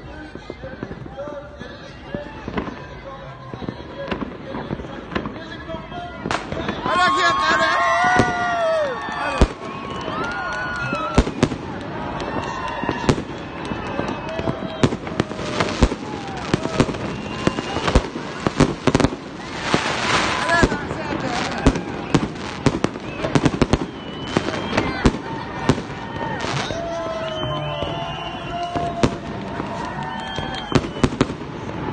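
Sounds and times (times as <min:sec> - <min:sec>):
fireworks bangs and crackles: 0:00.0 - 0:31.9.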